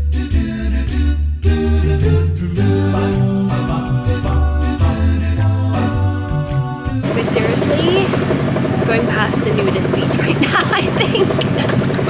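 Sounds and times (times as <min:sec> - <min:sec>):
boat engine running: 0:02.7 - 0:12.0
voices talking: 0:07.0 - 0:12.0.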